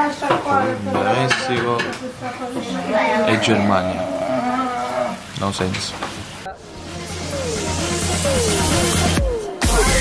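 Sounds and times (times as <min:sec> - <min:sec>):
dishes and cutlery clattering: 0:00.2 - 0:02.8.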